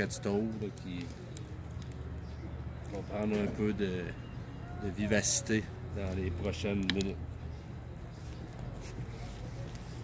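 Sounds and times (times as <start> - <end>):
wood fire crackling: 0.0 - 10.0.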